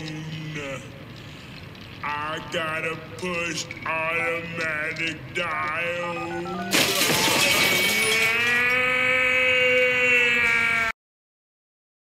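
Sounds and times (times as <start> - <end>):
man screaming: 6.0 - 11.0.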